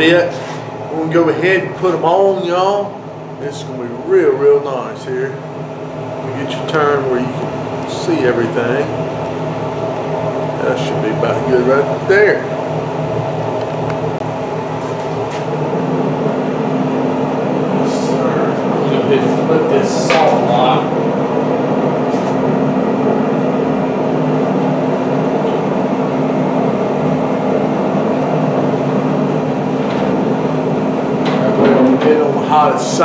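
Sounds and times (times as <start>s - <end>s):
grill fan humming: 0.0s - 33.0s.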